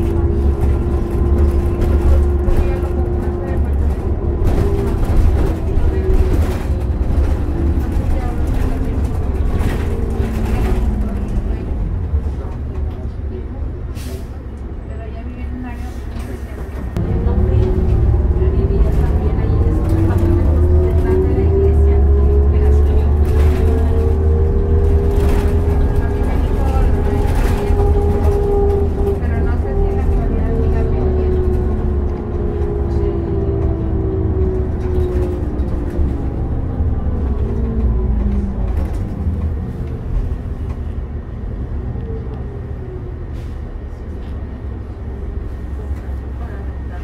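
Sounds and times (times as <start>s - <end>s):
bus engine rumble: 0.0s - 47.0s.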